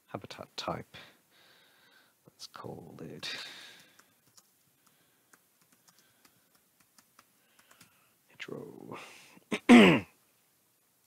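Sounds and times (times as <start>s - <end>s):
typing on computer keyboard: 3.7s - 8.0s.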